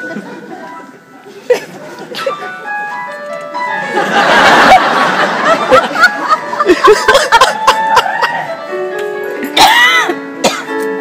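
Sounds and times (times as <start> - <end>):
audience laughter: 0.0 - 2.9, 3.7 - 8.6
electronic keyboard tune: 0.0 - 11.0.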